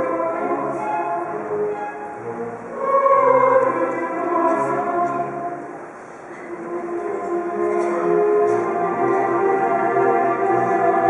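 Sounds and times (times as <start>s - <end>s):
choir singing: 0.0s - 11.0s
instrumental accompaniment: 0.0s - 11.0s.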